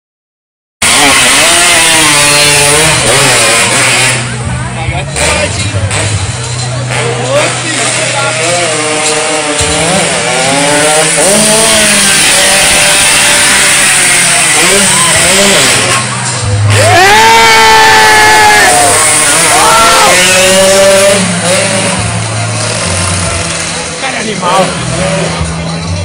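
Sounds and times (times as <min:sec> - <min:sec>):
motorcycle engine revving: 0:00.8 - 0:26.0.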